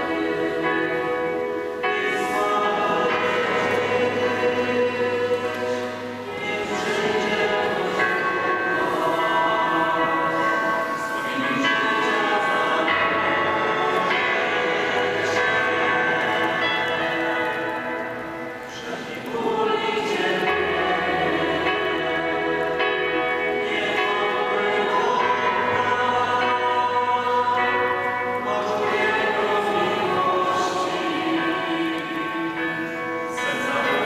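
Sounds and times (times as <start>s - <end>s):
choir singing sustained chords: 0.0s - 34.0s.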